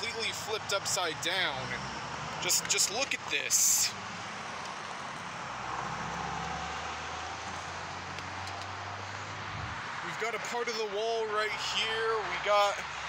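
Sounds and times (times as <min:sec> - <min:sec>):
road noise: 0:00.0 - 0:13.0
vehicle engine hum: 0:00.0 - 0:13.0.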